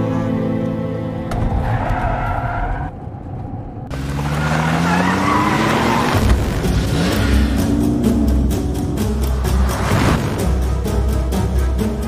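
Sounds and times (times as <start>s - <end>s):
car road noise: 0.3s - 12.0s
car engine revving: 3.9s - 10.8s.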